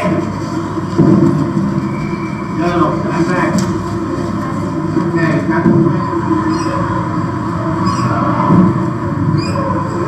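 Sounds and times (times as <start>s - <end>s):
video soundtrack over loudspeakers: 0.0s - 10.0s.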